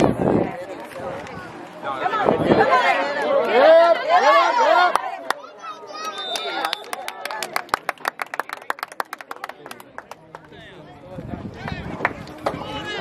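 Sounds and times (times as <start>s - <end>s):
spectators clapping: 4.9s - 10.8s, 11.6s - 12.7s
high whistle: 6.0s - 7.0s.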